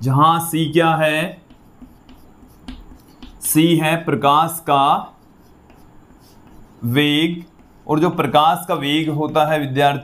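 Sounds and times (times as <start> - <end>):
chalk scratching on chalkboard: 0.6 - 9.8
man talking: 3.4 - 5.2, 6.8 - 10.0.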